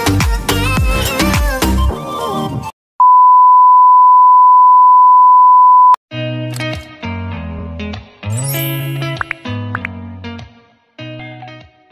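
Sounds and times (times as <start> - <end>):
music: 0.0 - 2.7, 6.1 - 11.9
steady test tone beep: 3.0 - 6.0.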